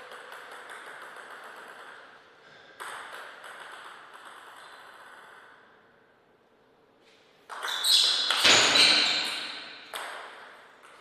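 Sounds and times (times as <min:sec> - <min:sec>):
table tennis ball pinging: 0:00.0 - 0:05.8, 0:07.4 - 0:11.0.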